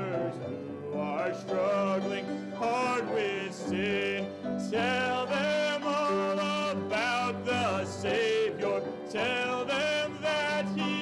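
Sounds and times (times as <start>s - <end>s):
grand piano: 0.0s - 11.0s
man singing a hymn: 0.0s - 11.0s.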